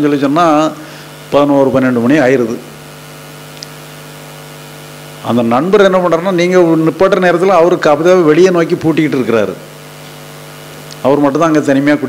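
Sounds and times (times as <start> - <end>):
low electrical hum: 0.0 - 12.0
sound system hiss: 0.0 - 12.0.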